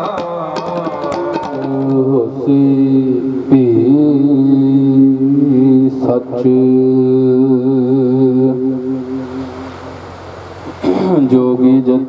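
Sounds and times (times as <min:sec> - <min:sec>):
man chanting into microphone: 0:00.0 - 0:09.7, 0:10.8 - 0:12.0.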